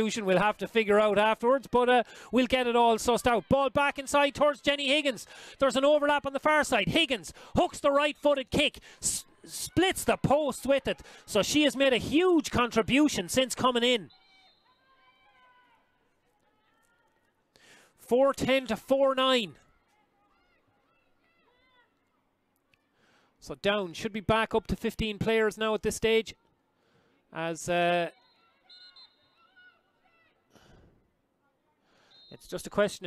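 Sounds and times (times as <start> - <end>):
soft breathy rush: 2.0 - 2.4, 5.2 - 5.6, 7.3 - 7.6, 8.7 - 9.4, 11.0 - 11.3.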